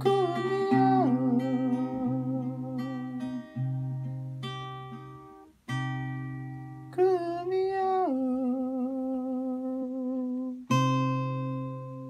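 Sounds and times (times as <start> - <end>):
man singing a wordless note: 0.0 - 3.6, 7.0 - 10.6
acoustic guitar: 0.0 - 12.0.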